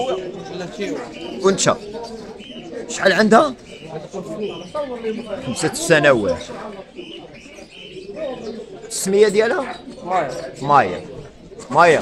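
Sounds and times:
faint voices: 0.0 - 12.0
pigeon cooing: 0.0 - 12.0.

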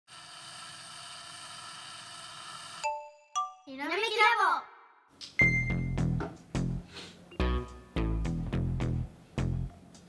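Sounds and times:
cartoon wind-up whirring: 0.1 - 3.0.

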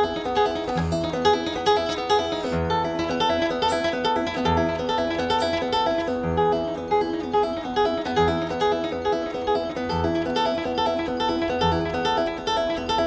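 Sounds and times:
classical guitar fingerstyle: 0.0 - 13.0.

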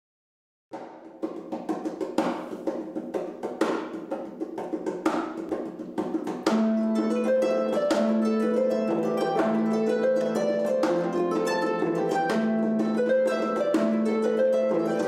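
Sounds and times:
harp plucked notes: 6.4 - 15.0.

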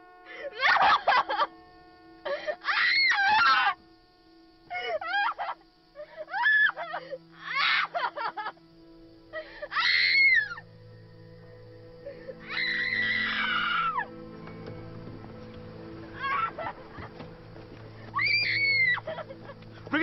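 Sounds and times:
held music drone: 0.0 - 20.0
woman wailing and sobbing: 0.3 - 1.6, 4.7 - 8.6, 16.1 - 17.2, 18.1 - 19.6.

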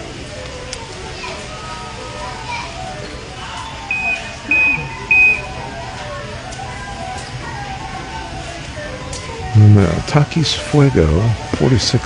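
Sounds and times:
faint store background music: 0.0 - 12.0
floor scrubbing machine beeping: 1.8 - 11.9.

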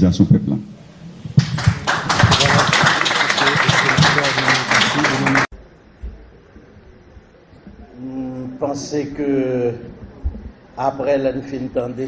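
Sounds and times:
audience applauding: 1.4 - 5.5
voices: 1.9 - 5.5.

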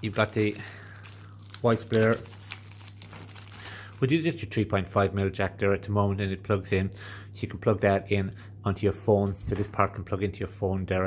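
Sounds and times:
plastic bag crinkling: 0.0 - 4.4.

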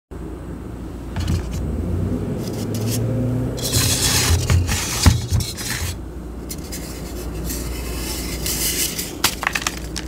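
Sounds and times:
chalk blocks scraping in plastic bowl: 2.4 - 3.0, 3.6 - 9.8.

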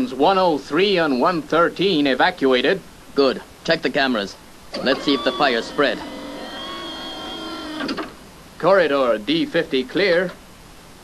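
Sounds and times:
steady electronic hum: 4.4 - 9.8.

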